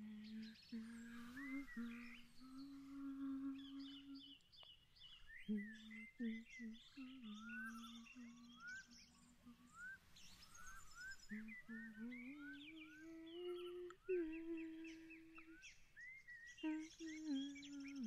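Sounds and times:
woman humming softly: 0.0s - 4.4s, 5.4s - 10.0s, 11.2s - 15.8s, 16.6s - 18.0s
birds chirping: 0.0s - 18.0s.

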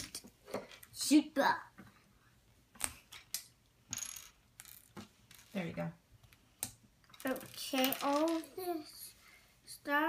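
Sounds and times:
plastic bricks rattling: 7.1s - 8.6s.

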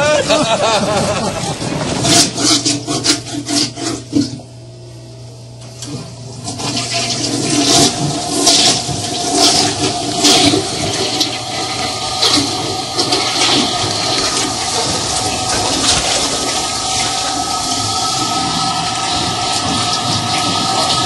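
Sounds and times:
toilet flushing: 0.0s - 4.7s, 5.6s - 21.0s.

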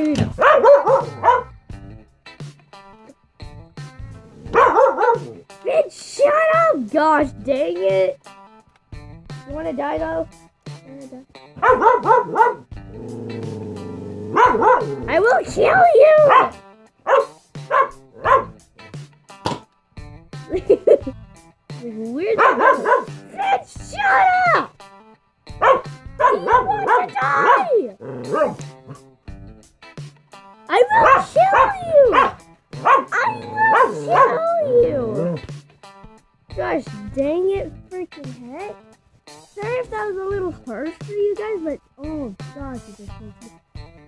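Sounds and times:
background music: 0.0s - 44.0s
dog barking sharply: 0.3s - 1.5s, 4.5s - 5.4s, 11.6s - 12.6s, 14.3s - 18.6s, 22.4s - 24.7s, 25.6s - 29.0s, 30.8s - 34.7s.

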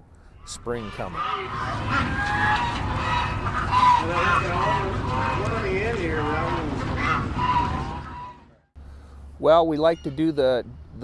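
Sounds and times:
geese honking: 0.4s - 8.7s, 9.5s - 10.9s.

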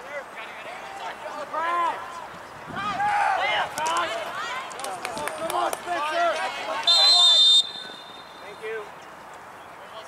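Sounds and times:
people shouting on a field: 0.1s - 8.7s
referee's whistle blast: 6.8s - 8.6s.

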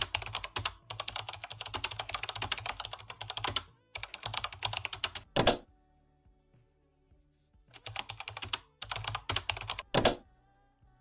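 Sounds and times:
fast typing on laptop keyboard: 0.0s - 5.6s, 7.8s - 10.2s.

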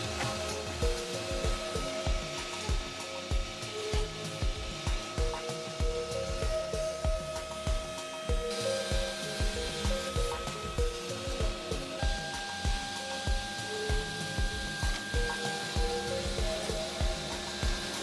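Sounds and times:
background music with beat: 0.0s - 18.0s
machine motor whirr: 0.0s - 18.0s.

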